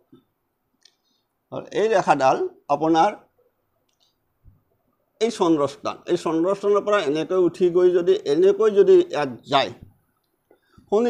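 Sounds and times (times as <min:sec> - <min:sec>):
man speaking: 0:01.5 - 0:03.3, 0:05.2 - 0:09.9.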